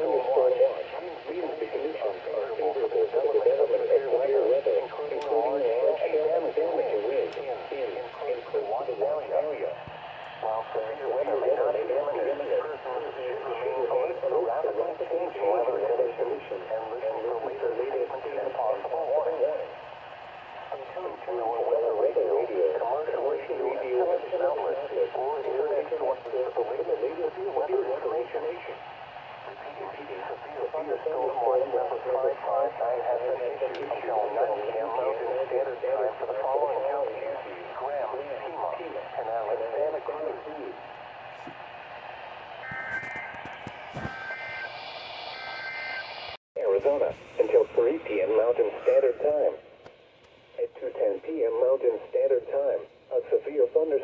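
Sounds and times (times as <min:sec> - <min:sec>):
voice through small radio speaker: 0:00.0 - 0:28.8, 0:29.4 - 0:41.9, 0:42.6 - 0:44.8, 0:46.6 - 0:49.6, 0:50.6 - 0:54.0.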